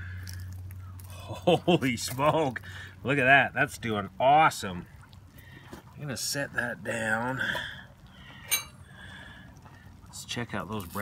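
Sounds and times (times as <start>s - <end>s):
metal lid clinking down: 8.5s - 8.8s.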